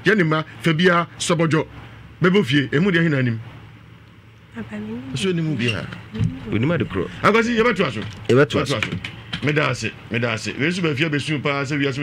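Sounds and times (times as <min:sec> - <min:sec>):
person speaking: 0:04.6 - 0:09.8.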